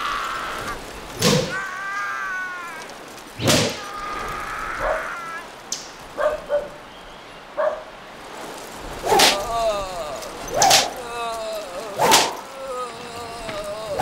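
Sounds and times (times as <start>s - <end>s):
man crying out in pain: 0.0s - 5.6s, 9.3s - 14.0s
sharp whip lashes: 1.2s - 1.5s, 3.4s - 3.8s, 9.0s - 9.5s, 10.6s - 11.0s, 12.0s - 12.4s
man grunting: 9.2s - 14.0s.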